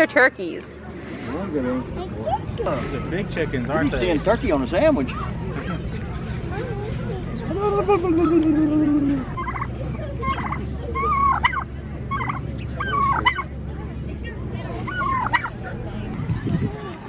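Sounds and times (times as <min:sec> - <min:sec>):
turkeys gobbling: 0:07.5 - 0:13.5, 0:14.2 - 0:15.6.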